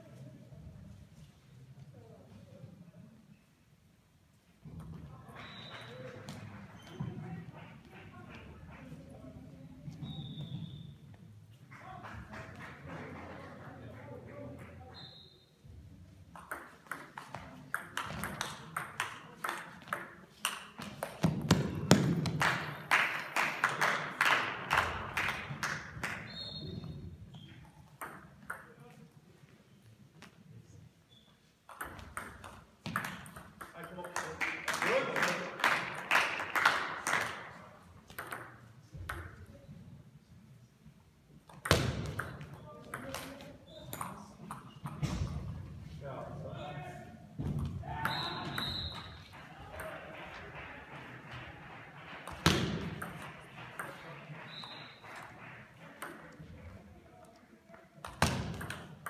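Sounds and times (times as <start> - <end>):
spectators clapping: 11.7 - 14.8, 22.2 - 26.3, 34.0 - 37.6, 48.9 - 56.8.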